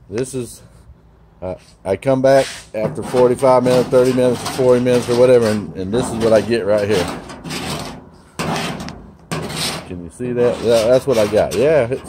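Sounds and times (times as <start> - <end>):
blade scraper scraping metal: 2.4 - 12.0.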